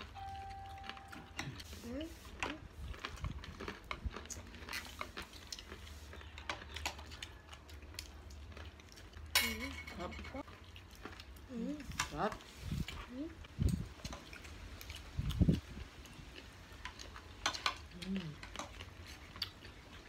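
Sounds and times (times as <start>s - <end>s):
chewing and mouth smacks: 2.3s - 9.4s, 10.4s - 20.0s.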